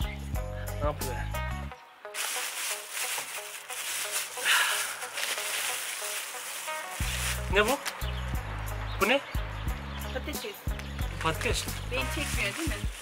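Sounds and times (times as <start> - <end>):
background music: 0.0 - 13.0
paper wrapping crinkling: 2.2 - 7.9, 12.0 - 13.0.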